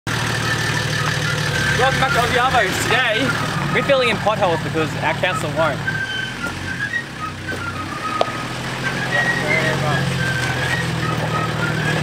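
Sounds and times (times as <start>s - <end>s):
diesel engine idling: 0.1s - 12.0s.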